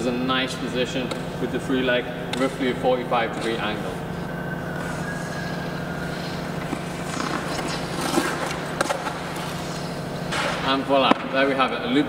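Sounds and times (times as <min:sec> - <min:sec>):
steady low hum: 0:00.0 - 0:12.0
skate blades scraping ice: 0:02.4 - 0:11.2
skate blades gliding on ice: 0:02.4 - 0:11.5
skate blades striking ice: 0:06.1 - 0:11.5.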